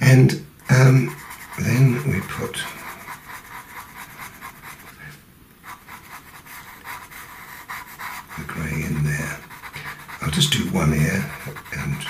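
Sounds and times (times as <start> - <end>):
pencil scratching on paper: 0.6 - 12.0.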